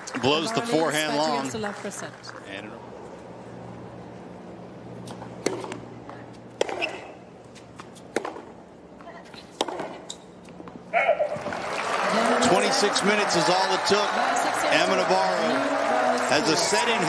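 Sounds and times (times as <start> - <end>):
tennis ball struck by racquet: 5.1 - 5.8, 6.5 - 7.2, 7.9 - 8.6, 9.5 - 10.2
crowd cheering burst: 11.2 - 17.0.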